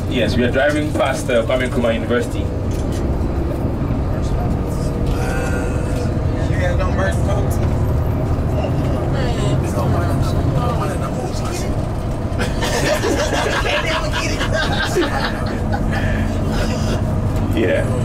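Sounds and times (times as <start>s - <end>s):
bus engine and road rumble: 0.0s - 18.0s.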